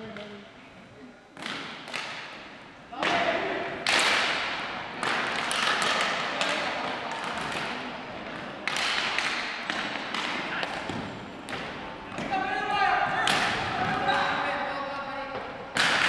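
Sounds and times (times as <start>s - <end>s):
hockey sticks and ball knocking: 1.4s - 14.6s, 15.2s - 16.0s
players calling out: 2.9s - 16.0s.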